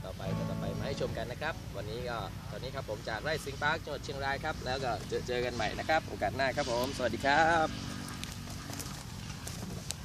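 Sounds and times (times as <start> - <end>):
steady low rumble: 0.2 - 4.6.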